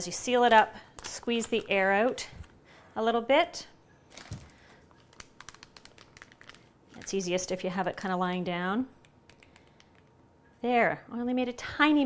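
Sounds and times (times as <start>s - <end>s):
plastic bag crinkling: 4.1s - 8.3s.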